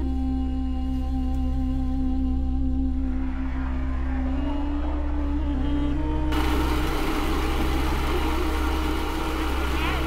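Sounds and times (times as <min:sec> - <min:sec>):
low music drone: 0:00.0 - 0:10.0
machine running noise: 0:06.3 - 0:10.0.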